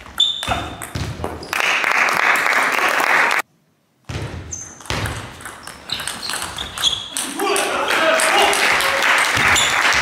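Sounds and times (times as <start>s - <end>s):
spectators clapping: 1.5s - 3.4s, 7.5s - 10.0s.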